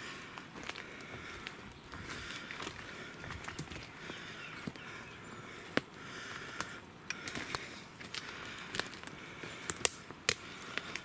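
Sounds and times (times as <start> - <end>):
footsteps crunching on forest floor: 0.0 - 11.0
twigs snapping: 0.2 - 4.8, 5.7 - 11.0.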